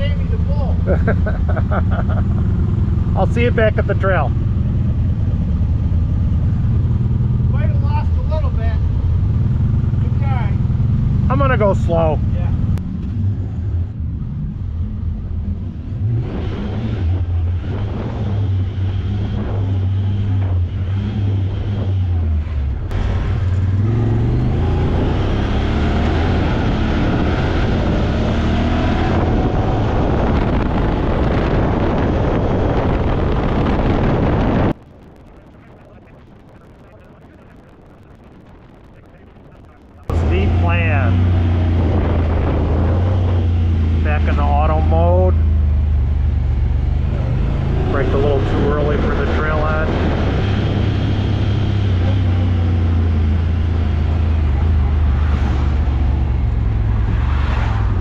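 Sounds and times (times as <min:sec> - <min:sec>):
tire noise: 0:00.0 - 0:58.0
vehicle engine running: 0:00.0 - 0:58.0
wind noise: 0:00.0 - 0:58.0.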